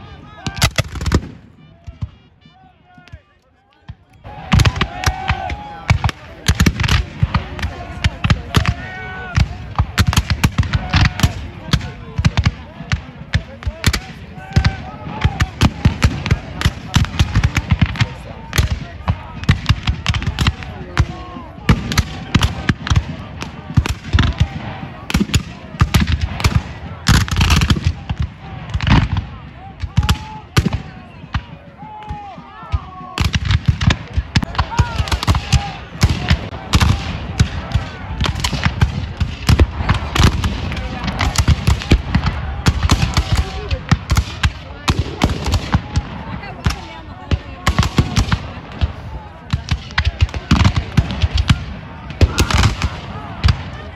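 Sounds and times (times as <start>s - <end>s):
muskets firing: 0.0s - 2.4s, 3.8s - 53.9s
men yelling: 2.5s - 6.6s, 7.3s - 11.8s.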